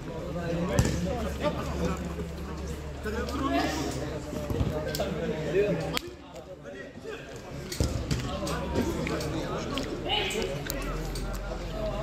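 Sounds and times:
football kick thump: 0.8s - 1.0s.

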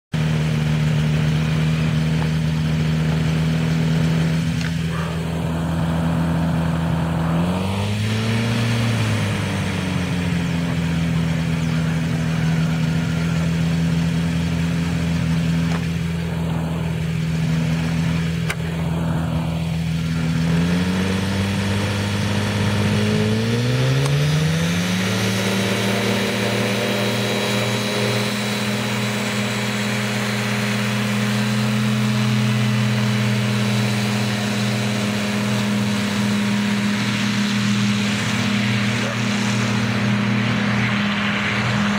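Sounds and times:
paramotor engine and propeller: 0.1s - 41.9s.

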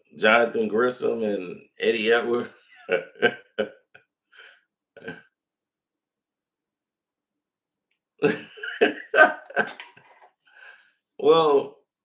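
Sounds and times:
man chuckling: 2.0s - 3.7s, 5.0s - 5.2s, 8.2s - 10.2s.

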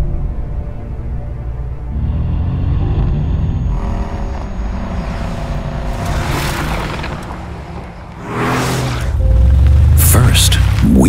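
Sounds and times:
sports car engine running: 3.5s - 11.0s.

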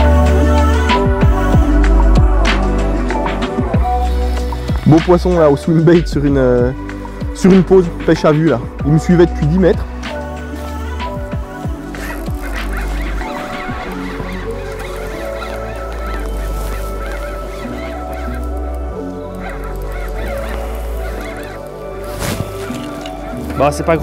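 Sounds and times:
background music: 0.0s - 24.0s
geese honking: 10.6s - 24.0s.

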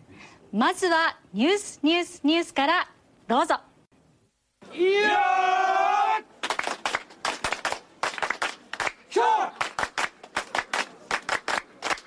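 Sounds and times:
rhythmic group hand clapping: 6.4s - 9.0s, 9.6s - 12.0s.

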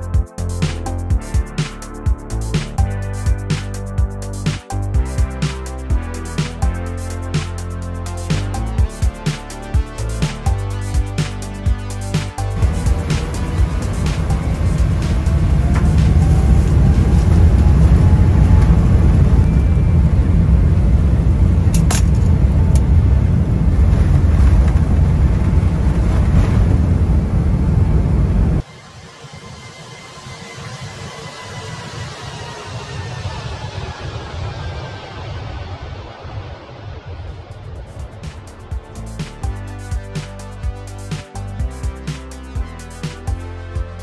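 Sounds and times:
music: 0.0s - 23.0s, 28.6s - 44.0s
heavy engine and runway rumble: 4.4s - 29.6s, 30.8s - 40.7s.

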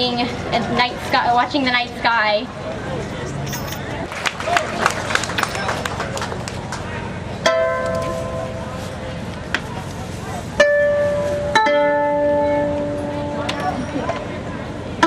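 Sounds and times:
koto plucked notes: 7.4s - 8.7s, 10.6s - 15.0s.

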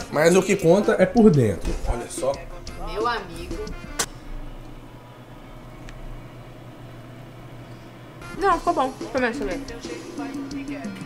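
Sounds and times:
low hum of kitchen room tone: 4.1s - 8.2s.

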